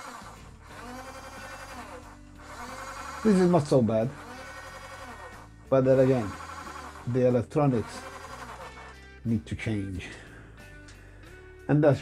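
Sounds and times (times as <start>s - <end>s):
small electric motor: 0.0s - 9.1s.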